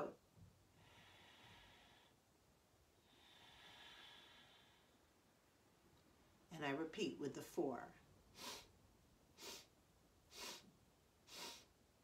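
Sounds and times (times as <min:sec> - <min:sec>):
long exhale through the nose: 0:00.8 - 0:02.2, 0:03.0 - 0:05.0, 0:08.4 - 0:08.7, 0:09.4 - 0:09.7, 0:10.3 - 0:10.7, 0:11.3 - 0:11.7.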